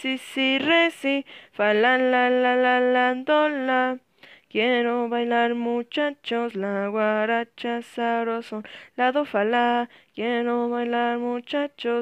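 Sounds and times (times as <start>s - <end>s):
woman singing long held notes: 0.0s - 12.0s.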